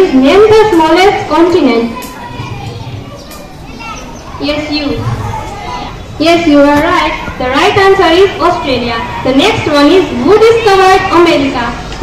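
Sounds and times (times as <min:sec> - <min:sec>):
children whispering and talking: 0:00.0 - 0:12.0.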